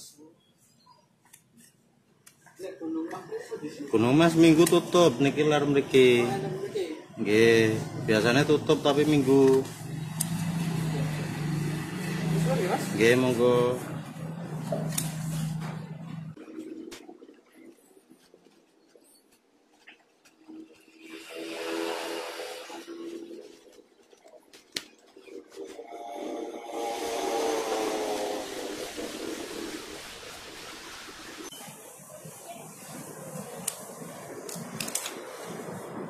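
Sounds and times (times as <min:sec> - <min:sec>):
passing vehicle engines: 0:04.0 - 0:16.4, 0:25.2 - 0:30.9.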